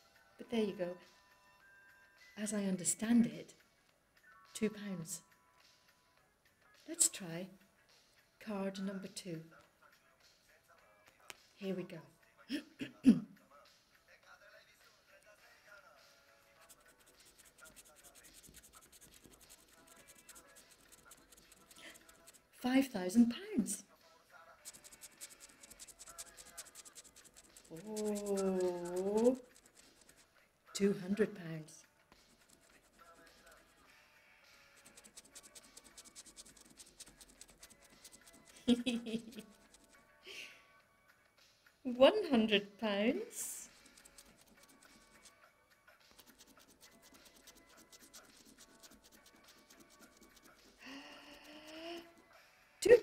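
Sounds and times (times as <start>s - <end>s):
coin scraping scratch card: 16.6s - 22.5s, 24.6s - 30.3s, 32.2s - 33.8s, 34.6s - 40.0s, 43.6s - 45.4s, 46.1s - 52.2s.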